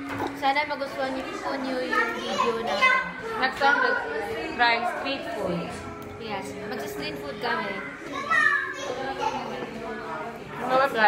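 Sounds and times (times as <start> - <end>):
faint chatter: 0.0 - 11.0.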